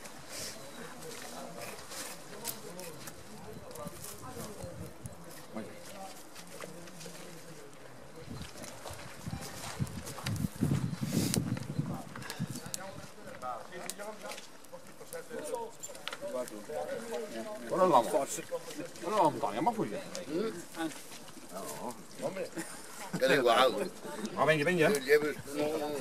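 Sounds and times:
indistinct conversation: 11.1 - 26.0.

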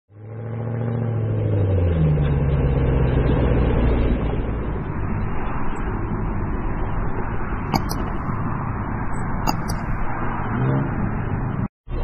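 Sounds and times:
car engine rumbling: 0.1 - 12.0.

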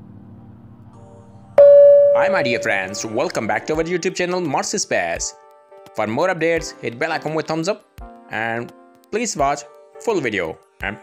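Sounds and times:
quiet low drone: 1.6 - 3.4
loud held tone: 1.6 - 3.5.

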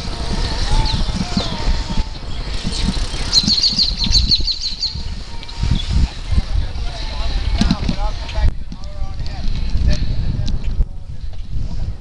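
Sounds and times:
bird trilling: 0.0 - 6.2
wind buffeting microphone: 0.0 - 12.0.

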